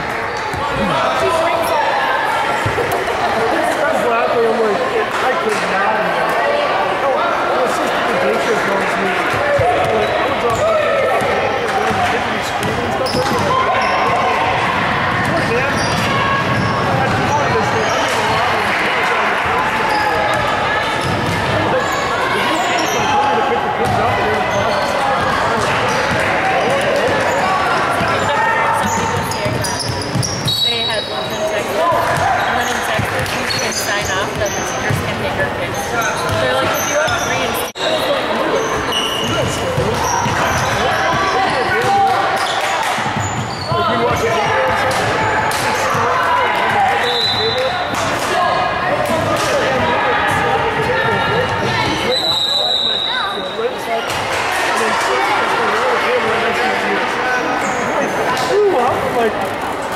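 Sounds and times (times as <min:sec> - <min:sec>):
chatter and shouts: 0:00.0 - 0:59.9.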